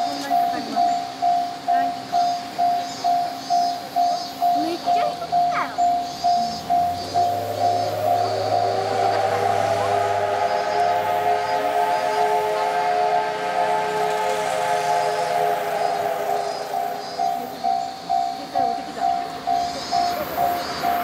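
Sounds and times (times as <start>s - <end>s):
level crossing warning bell: 0.0s - 21.0s
steam locomotive whistle: 0.0s - 21.0s.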